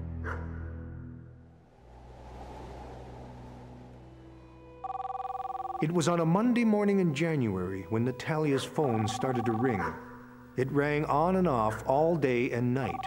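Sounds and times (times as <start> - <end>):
low background music: 3.0 - 13.0
telephone ringing: 4.8 - 6.1, 8.8 - 9.8, 12.8 - 13.0.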